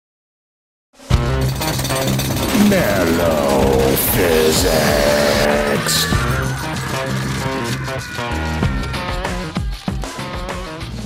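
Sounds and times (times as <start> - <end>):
music: 1.0 - 11.0
rapid pounding rattle: 1.1 - 9.0.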